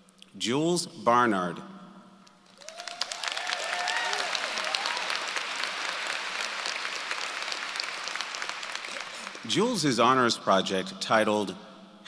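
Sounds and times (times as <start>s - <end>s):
audience applauding: 2.5s - 9.8s
voices cheering: 2.6s - 7.6s.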